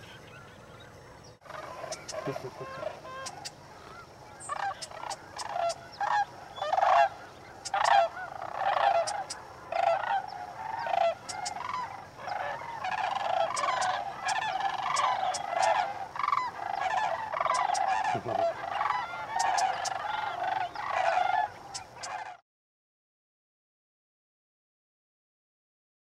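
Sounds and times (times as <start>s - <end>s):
flock of cranes calling: 0.0s - 22.4s.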